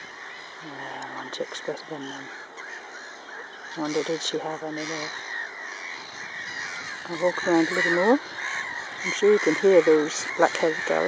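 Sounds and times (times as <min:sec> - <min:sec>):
gulls calling: 0:00.0 - 0:11.0.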